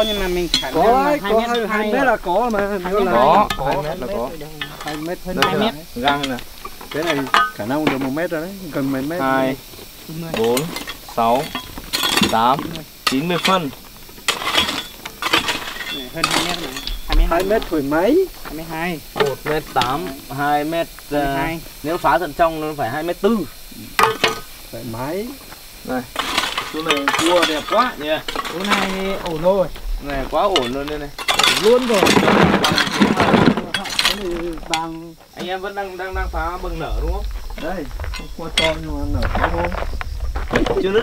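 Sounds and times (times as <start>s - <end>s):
metal hoe scraping gravel: 0.0s - 2.2s, 2.8s - 8.1s, 8.8s - 22.7s, 25.9s - 41.0s
stones clinking: 0.0s - 8.3s, 9.6s - 22.7s, 26.1s - 41.0s.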